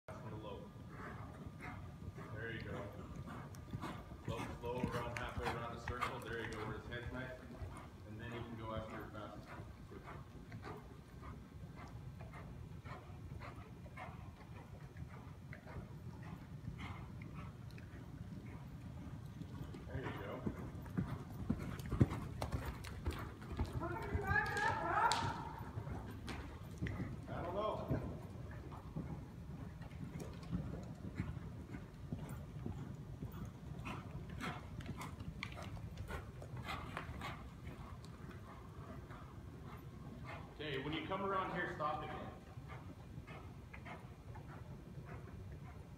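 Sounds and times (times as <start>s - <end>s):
horse hoofbeats on soft dirt: 0.1s - 45.9s.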